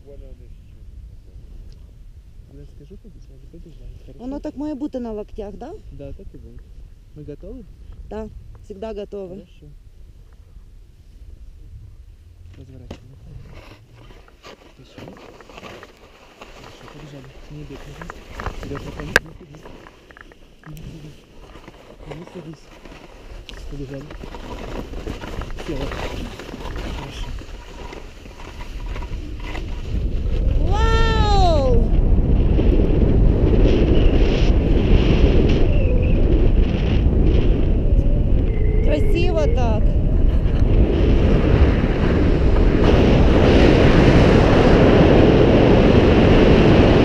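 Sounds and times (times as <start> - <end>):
wind rumbling on microphone: 0.0 - 47.0
harness rustles and clicks: 13.8 - 29.8.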